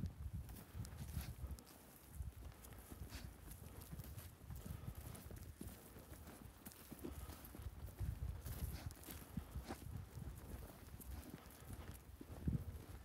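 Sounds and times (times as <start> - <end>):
footsteps on loose soil: 0.0 - 13.0.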